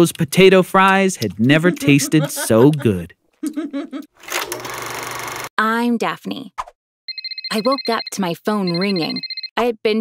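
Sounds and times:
telephone bell ringing: 7.1 - 9.5.

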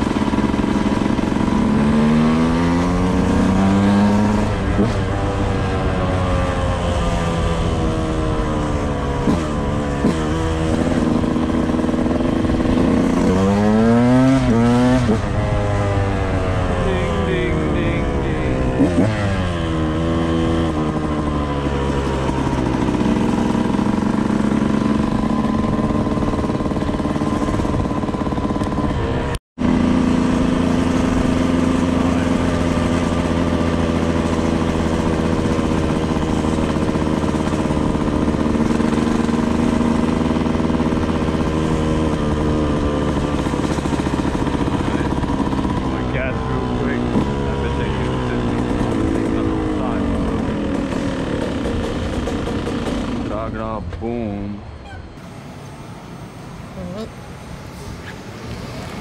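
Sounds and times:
dirt bike engine running: 0.0 - 59.0.

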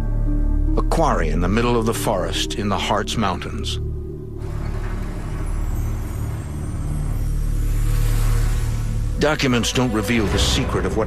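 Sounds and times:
vehicle engine driving: 4.2 - 11.0.

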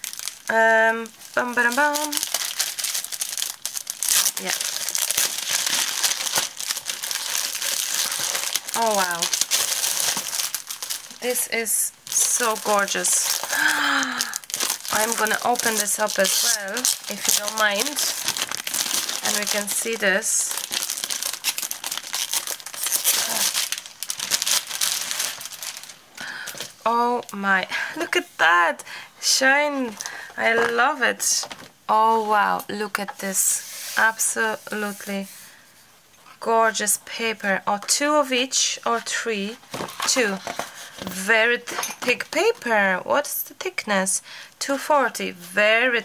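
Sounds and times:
plastic wrapping crinkling: 0.0 - 28.3, 29.3 - 35.1, 39.0 - 42.7.

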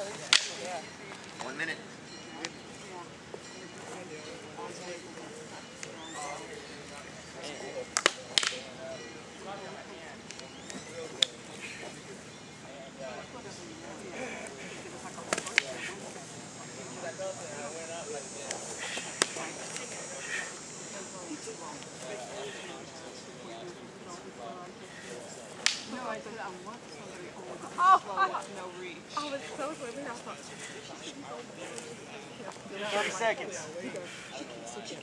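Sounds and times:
faint voices: 0.0 - 35.0
sticks striking sharp cracks: 0.3 - 0.7, 8.0 - 8.6, 15.3 - 15.8, 18.5 - 19.9, 25.6 - 26.0.

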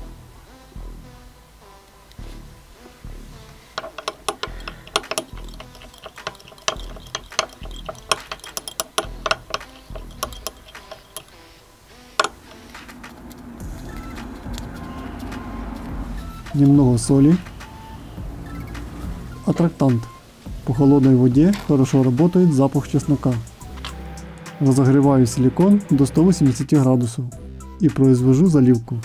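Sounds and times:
background music: 0.0 - 29.0
stick clinking against glass cup: 3.8 - 11.3.

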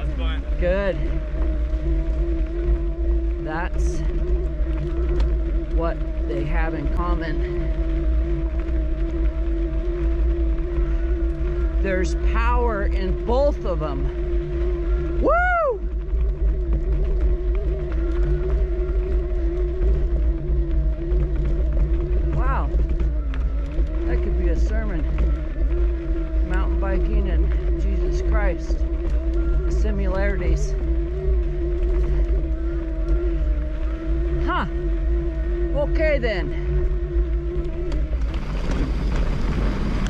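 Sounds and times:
electric bike motor whining: 0.0 - 40.0
low wind rumble: 0.0 - 40.0.

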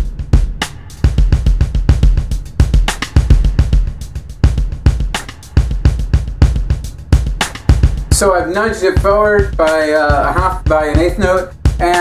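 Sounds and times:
sampled drum pattern: 0.0 - 12.0.

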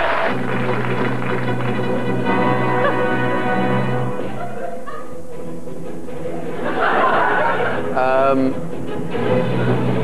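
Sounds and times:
orchestral theme tune: 0.1 - 10.0.

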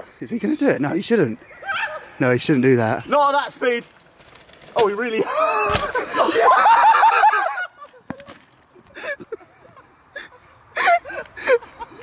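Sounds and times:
man laughing: 5.2 - 8.1, 8.8 - 12.0.

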